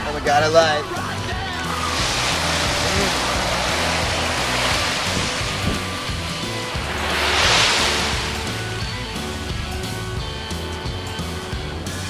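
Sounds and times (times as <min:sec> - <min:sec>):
song playing: 0:00.8 - 0:11.4
waves washing up on sand: 0:01.6 - 0:09.7.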